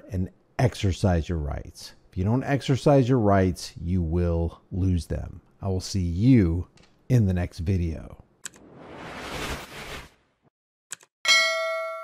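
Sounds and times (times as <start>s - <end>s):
bright bell ding: 11.3s - 12.0s.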